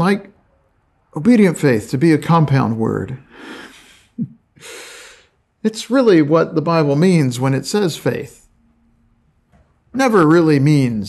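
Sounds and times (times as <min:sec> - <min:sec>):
man breathing: 0:03.2 - 0:05.4.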